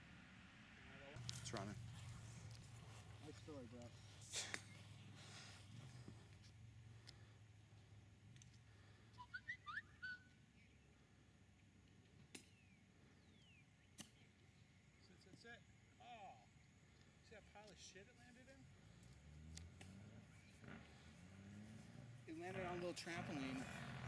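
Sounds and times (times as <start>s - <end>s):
faint bird chirps: 8.8s - 11.3s, 12.4s - 16.7s.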